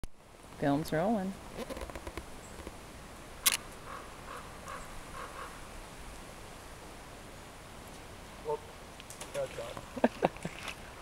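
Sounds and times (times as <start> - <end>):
faint bird calls: 3.6 - 5.7.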